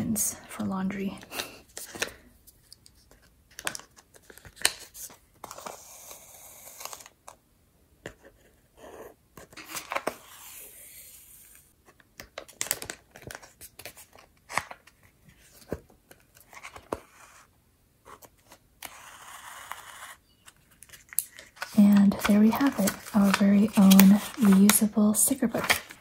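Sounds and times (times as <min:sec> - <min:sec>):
paper rustling: 0:20.5 - 0:26.0.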